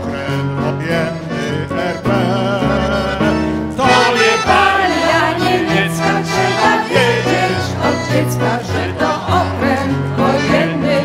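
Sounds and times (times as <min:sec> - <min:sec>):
band playing folk song: 0:00.0 - 0:11.0.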